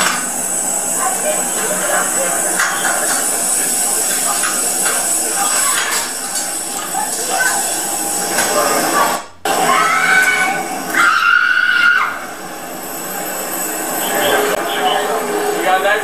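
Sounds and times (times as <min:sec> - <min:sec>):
long high cry: 0:09.6 - 0:12.2.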